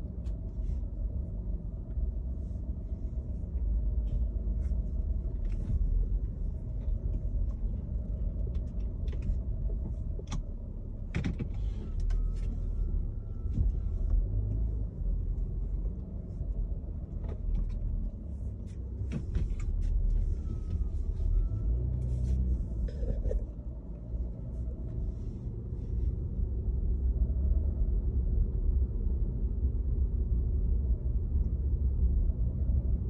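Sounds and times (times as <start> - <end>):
car cabin rumble: 0.0 - 33.0.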